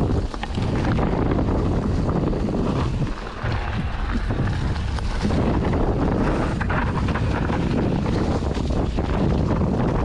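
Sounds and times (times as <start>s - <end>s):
bike clicks and rattles: 0.0s - 10.0s
bike tyres rumbling on dirt trail: 0.0s - 10.0s
wind on microphone: 0.0s - 10.0s.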